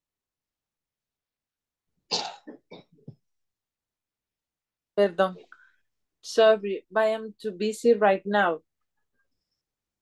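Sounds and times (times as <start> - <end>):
person coughing: 2.1 - 3.0.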